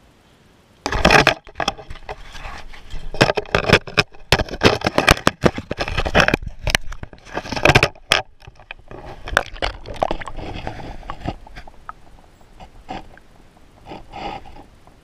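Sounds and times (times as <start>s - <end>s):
water sloshing: 0.9s - 14.7s
sharp knocks and scrapes: 0.9s - 15.0s.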